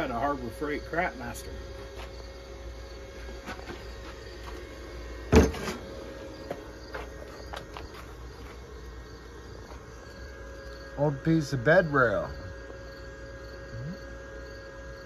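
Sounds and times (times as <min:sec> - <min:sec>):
crickets chirping: 0:00.0 - 0:15.0
loud sharp metal clunk: 0:05.3 - 0:05.9.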